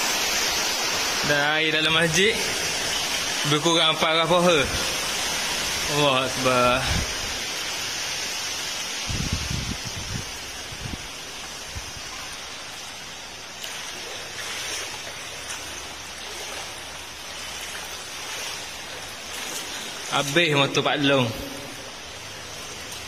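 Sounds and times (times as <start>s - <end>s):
heavy rain: 0.0s - 23.0s.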